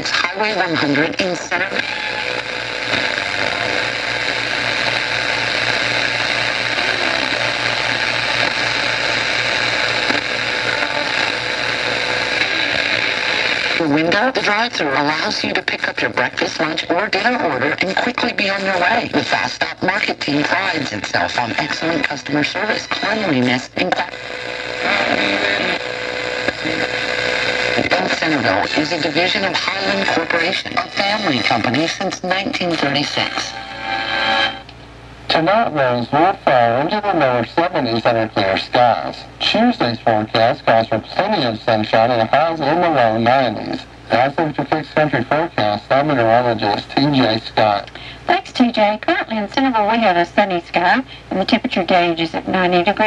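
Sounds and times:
announcer's voice on radio: 0:00.0 - 0:33.8, 0:35.3 - 0:53.0
radio static: 0:00.0 - 0:34.7, 0:35.3 - 0:53.0
pulsing low hum: 0:01.8 - 0:14.0.

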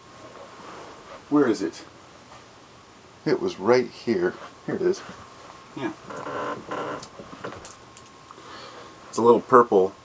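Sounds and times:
clothing rustling: 0:00.1 - 0:01.3.

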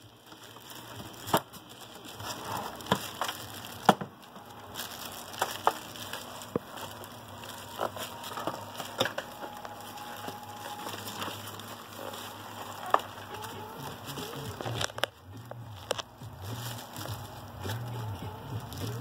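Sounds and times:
plastic wrapping crinkling: 0:00.0 - 0:19.0.

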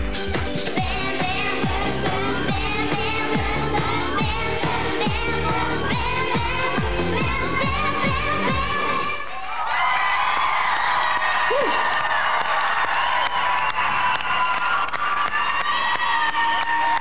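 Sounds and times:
pop song music: 0:00.0 - 0:09.4
audience cheering and applauding: 0:09.2 - 0:17.0.

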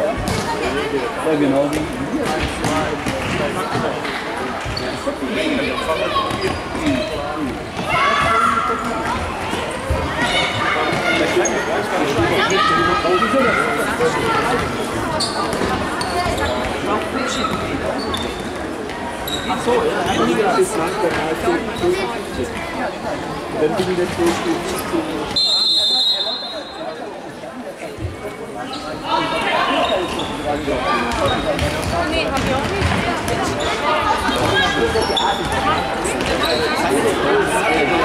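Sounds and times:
players' voices echoing: 0:00.0 - 0:38.0
shoe squeaks on floor: 0:06.2 - 0:07.0, 0:15.1 - 0:18.6, 0:19.2 - 0:19.8, 0:29.7 - 0:32.0, 0:32.8 - 0:36.9.

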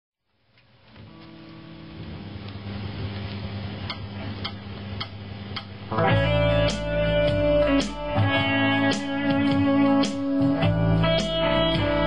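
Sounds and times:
guitar amp mains hum: 0:00.3 - 0:12.0
backing track: 0:03.8 - 0:12.0.

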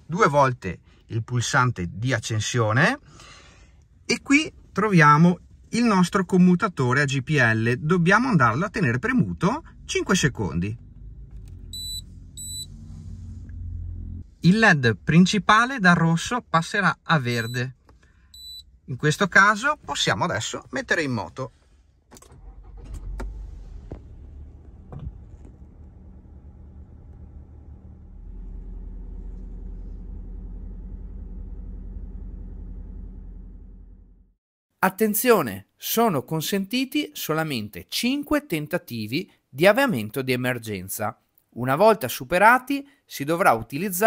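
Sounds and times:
car engine starting and idling: 0:03.0 - 0:34.4
short high-pitched beeps: 0:11.7 - 0:12.7, 0:18.4 - 0:18.6
low steady hum: 0:22.4 - 0:34.3.

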